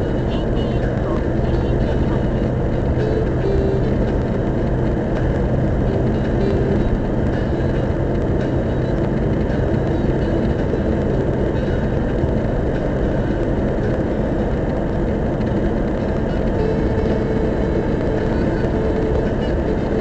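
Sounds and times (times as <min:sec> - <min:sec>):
car road noise in tunnel: 0:00.0 - 0:20.0
faint steady hum: 0:00.0 - 0:20.0.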